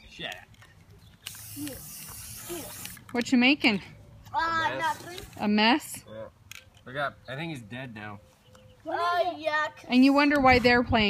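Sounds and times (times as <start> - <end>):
spray-paint can hissing: 1.3 - 3.0.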